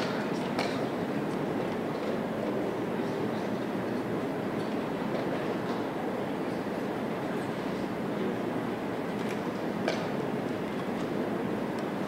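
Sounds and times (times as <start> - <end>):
rumbling hiss of large hall: 0.0 - 12.0.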